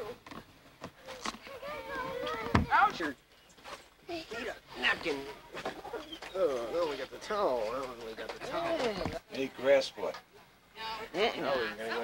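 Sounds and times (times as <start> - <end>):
child's high-pitched voice: 1.0 - 3.0.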